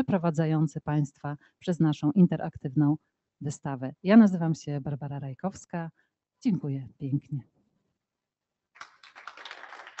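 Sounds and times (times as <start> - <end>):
audience applauding: 8.8 - 10.0.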